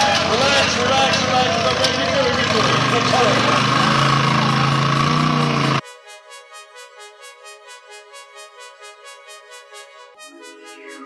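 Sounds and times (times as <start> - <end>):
buggy engine running: 0.0 - 5.8
electronic music: 2.2 - 11.0.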